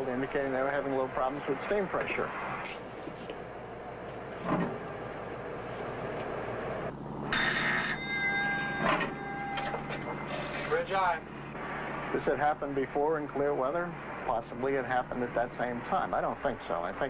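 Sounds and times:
voice: 0.0s - 2.3s, 10.6s - 11.2s, 12.1s - 17.0s
electronic buzzer tone: 7.2s - 10.5s.

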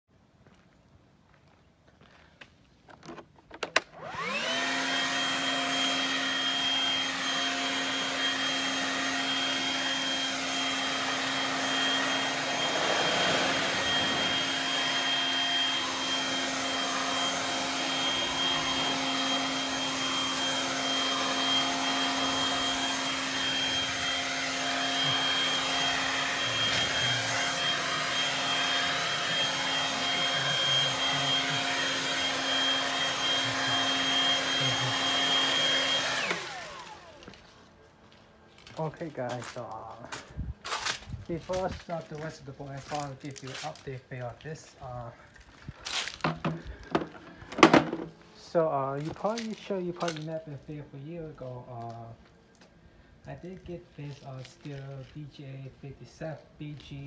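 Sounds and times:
leaf blower running: 3.7s - 50.4s.

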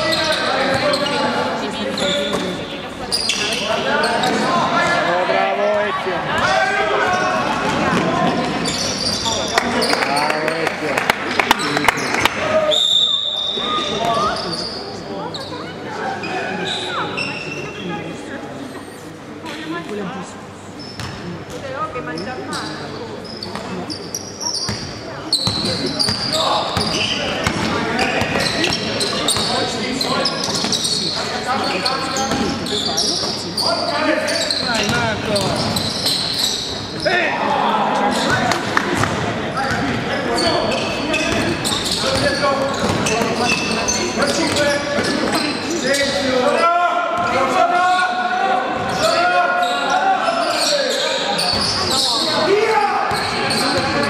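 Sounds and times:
basketball bouncing on court: 21.0s - 21.6s, 24.7s - 29.5s, 38.3s - 40.0s, 41.2s - 43.6s.

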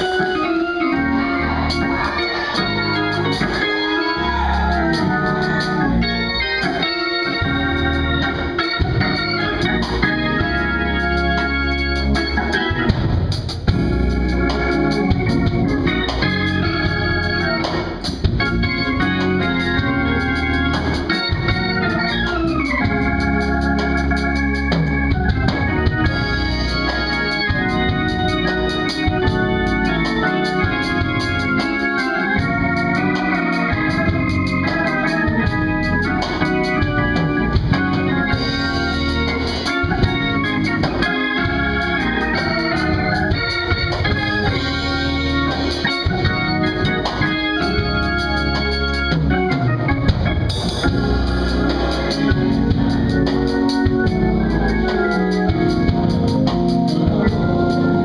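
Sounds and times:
organ playing chords: 0.0s - 58.0s.

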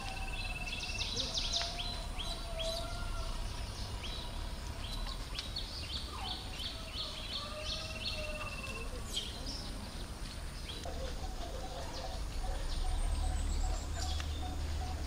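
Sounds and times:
bird trill: 0.0s - 9.6s
birds chirping: 0.0s - 15.0s.

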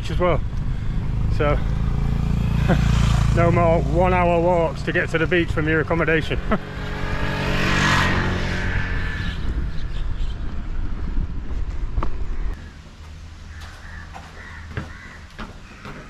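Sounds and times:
low traffic rumble: 0.0s - 16.0s
vehicle passing by: 0.3s - 14.3s
crows cawing: 12.4s - 16.0s.

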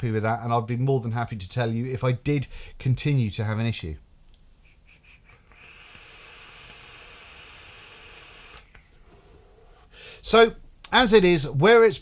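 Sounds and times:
vape draw hiss: 4.9s - 8.9s
vape click: 5.4s - 8.9s.

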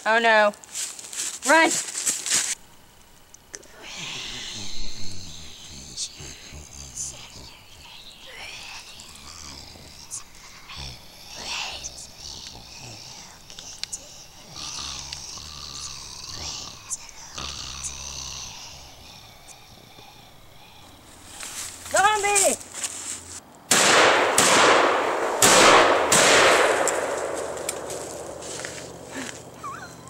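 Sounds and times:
raspy vocal growls and hisses: 3.6s - 22.6s.

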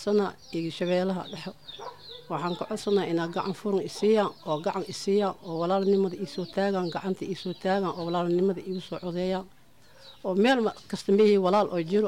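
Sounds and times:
woman speaking: 0.0s - 1.6s, 2.3s - 9.5s, 10.2s - 12.0s
faint high bird calls: 0.0s - 11.4s.

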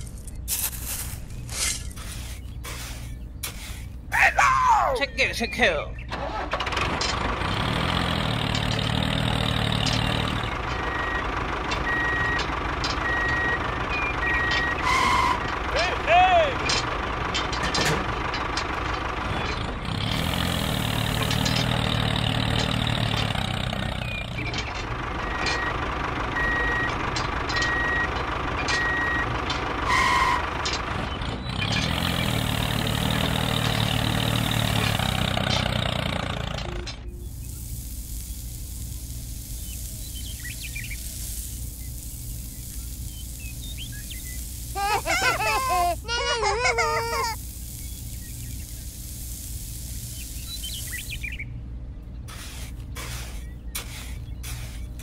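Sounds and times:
heavy truck engine running: 0.0s - 55.0s
reversing beeper: 10.7s - 15.5s, 25.2s - 30.5s.

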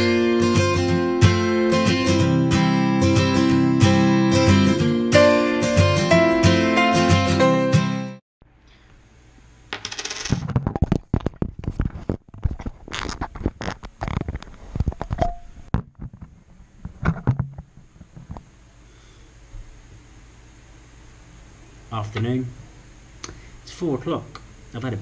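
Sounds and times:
small hard objects clicking and knocking: 9.7s - 16.4s.

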